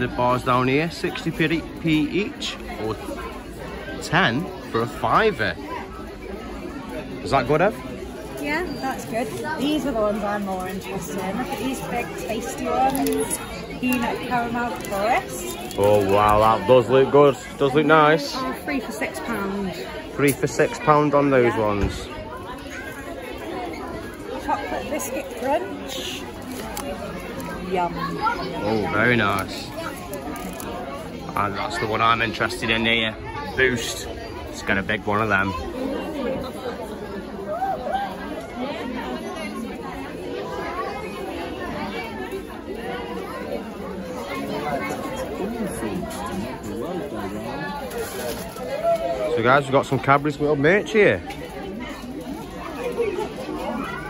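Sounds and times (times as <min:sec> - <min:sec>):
shoppers chattering: 0:00.0 - 0:54.0.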